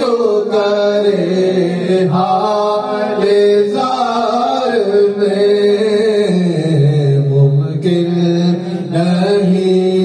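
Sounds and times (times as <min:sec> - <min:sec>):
man chanting in long held notes: 0:00.0 - 0:10.0.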